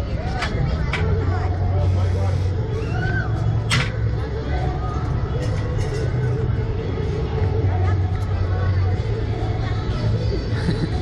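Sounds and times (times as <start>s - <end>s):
faint background voices: 0.0s - 11.0s
low mechanical hum: 0.0s - 11.0s.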